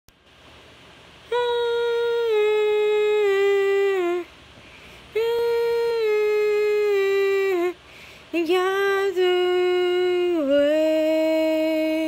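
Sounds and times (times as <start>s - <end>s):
woman humming into a microphone: 5.2s - 7.8s.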